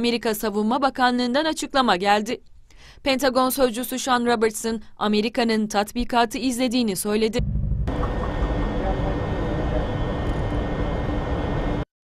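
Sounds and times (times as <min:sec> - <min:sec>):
jet aircraft flying past: 0:07.4 - 0:11.8.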